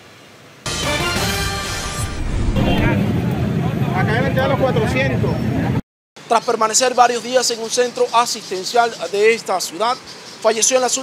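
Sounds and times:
street noise rumble: 0.6 - 7.8
news transition sting: 0.7 - 4.1.

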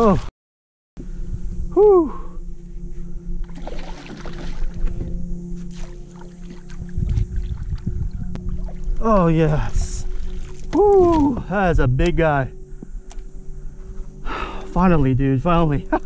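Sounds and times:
background music held notes: 1.0 - 16.0
person crying out: 1.7 - 2.4, 10.7 - 11.5
fish splashing in water: 3.5 - 4.8.

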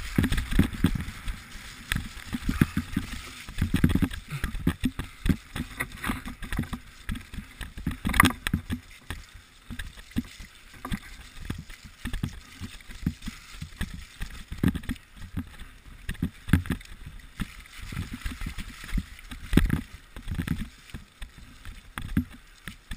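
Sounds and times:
bike tyres rumbling on dirt: 0.0 - 16.7.

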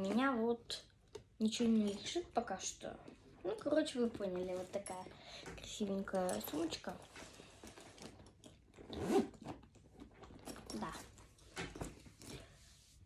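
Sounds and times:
handbag rustling and scraping: 3.0 - 5.2, 5.9 - 13.0.

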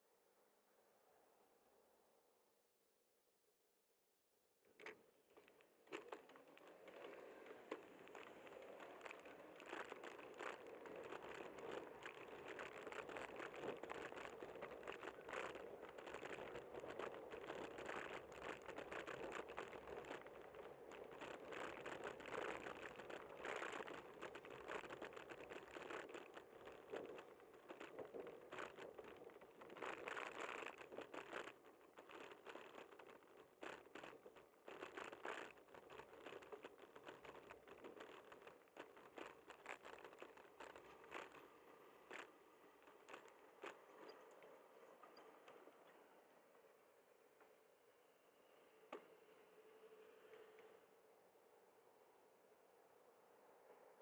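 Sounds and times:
bicycle road vibration crackles: 5.4 - 46.6
wind rushing on camera: 5.9 - 45.8.

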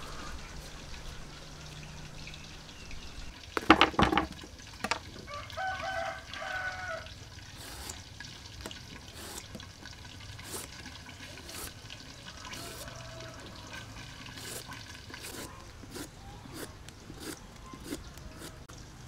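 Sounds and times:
rooster crowing: 0.0 - 2.1, 5.2 - 7.9, 11.6 - 15.6
knife knocking on wooden board: 3.6 - 5.0
peeler scraping gourd skin: 7.5 - 18.7.

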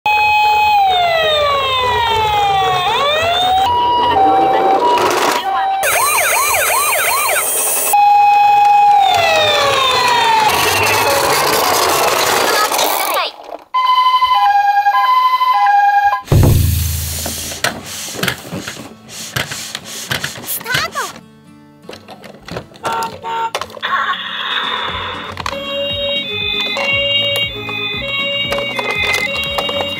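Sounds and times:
toy electronic siren: 0.1 - 12.4, 13.8 - 16.3, 22.9 - 29.9
low thud: 16.3 - 17.6.

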